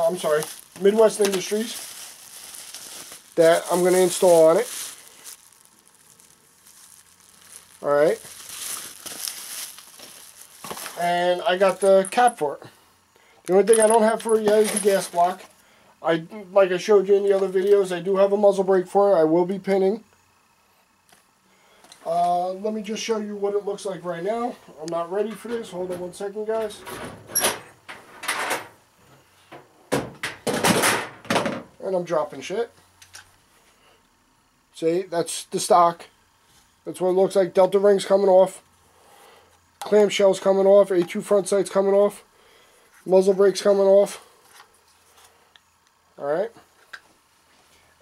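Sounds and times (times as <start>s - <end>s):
bubble wrap crinkling: 0.0s - 12.4s
low steady hiss: 0.0s - 48.0s
rustling of gear: 6.7s - 12.4s
things being dropped: 8.5s - 11.0s, 13.5s - 15.4s.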